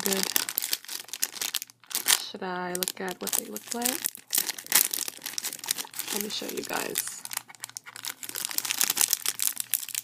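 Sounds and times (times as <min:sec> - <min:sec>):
plastic packet crinkling: 0:00.0 - 0:10.0.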